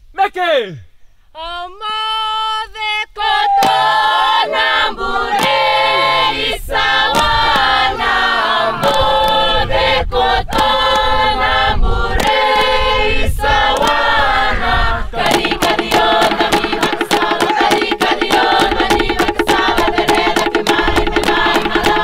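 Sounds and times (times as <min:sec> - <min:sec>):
chorus chanting: 0:03.2 - 0:22.0
sharp percussive strikes: 0:05.3 - 0:05.6, 0:15.2 - 0:22.0.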